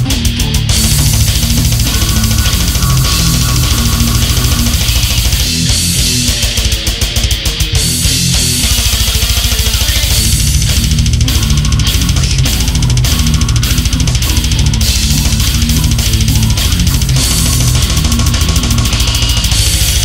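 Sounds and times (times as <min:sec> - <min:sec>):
distorted guitar riff: 0:00.0 - 0:20.0
fast dense drumming: 0:00.0 - 0:20.0.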